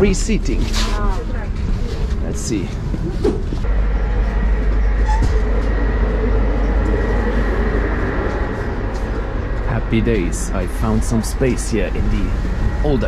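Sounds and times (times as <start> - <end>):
train rumble from inside carriage: 0.0 - 13.0
faint steady whine: 3.5 - 13.0.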